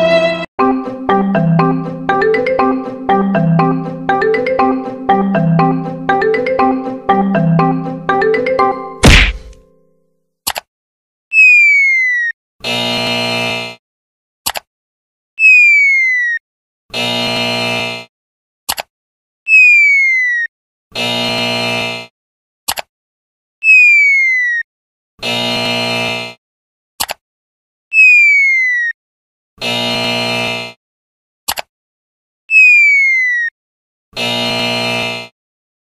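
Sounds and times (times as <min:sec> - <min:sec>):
harsh buzzer: 0:12.6 - 0:13.8, 0:16.9 - 0:18.1, 0:21.0 - 0:22.1, 0:25.2 - 0:26.4, 0:29.6 - 0:30.8, 0:34.2 - 0:35.4.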